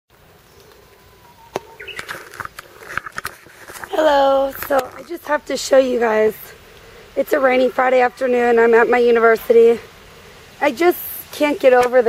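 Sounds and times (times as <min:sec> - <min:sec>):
steady hiss: 0:00.1 - 0:12.0.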